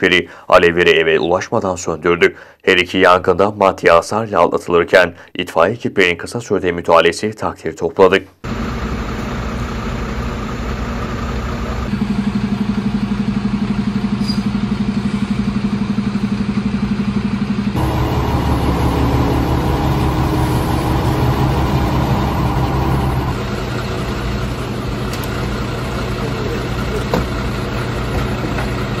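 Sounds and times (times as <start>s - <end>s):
diesel engines idling: 8.5s - 29.0s.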